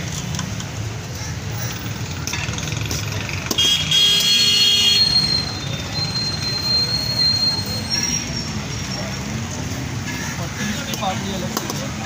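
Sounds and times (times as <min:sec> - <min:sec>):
street traffic rumbling: 0:00.0 - 0:12.0
vehicle horn: 0:03.6 - 0:05.2.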